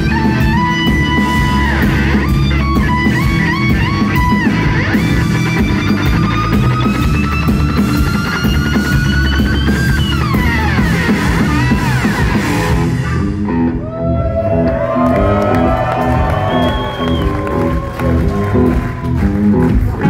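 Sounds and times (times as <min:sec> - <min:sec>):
electric guitar solo: 0:00.0 - 0:19.8
bass guitar: 0:00.0 - 0:20.0
drums: 0:00.0 - 0:20.0.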